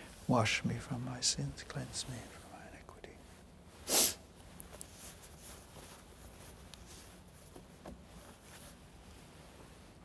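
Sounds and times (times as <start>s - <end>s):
man whispering a prayer: 0.1s - 3.4s.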